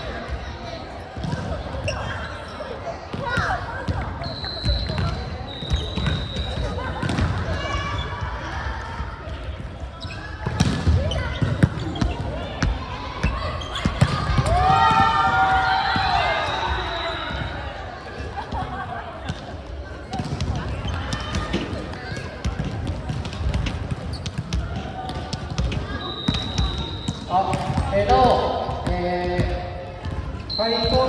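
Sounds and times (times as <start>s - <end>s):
referee's whistle: 4.2s - 6.8s, 25.9s - 27.4s, 30.4s - 31.0s.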